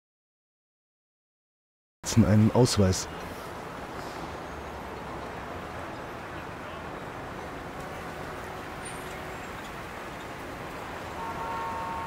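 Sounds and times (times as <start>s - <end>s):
distant traffic hum: 2.0s - 12.0s.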